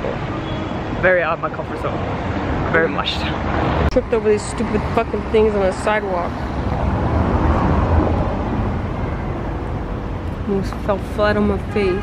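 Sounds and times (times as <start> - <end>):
city street rumble: 0.0 - 12.0.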